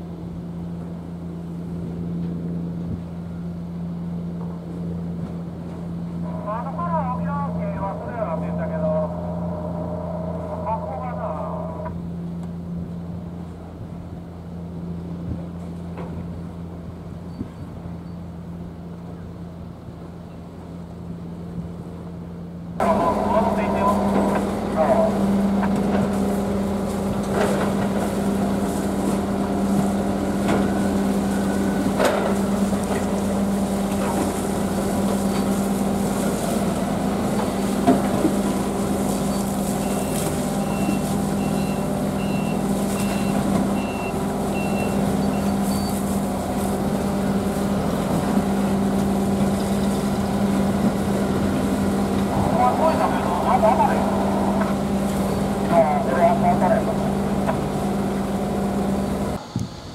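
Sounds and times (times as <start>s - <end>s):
boat engine droning: 0.0s - 59.9s
short high beeps: 39.8s - 46.0s.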